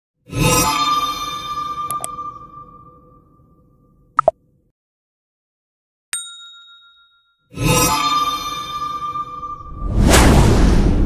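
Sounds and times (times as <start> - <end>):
bell-like ding: 6.2 - 7.5
ringing chime: 6.2 - 8.4.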